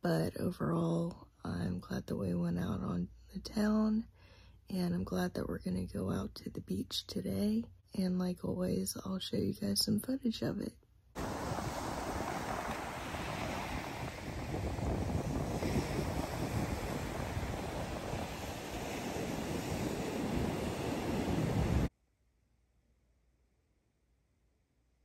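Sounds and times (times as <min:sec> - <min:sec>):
ocean surf breaking on beach: 0:11.2 - 0:21.9
wind buffeting microphone: 0:11.2 - 0:21.9.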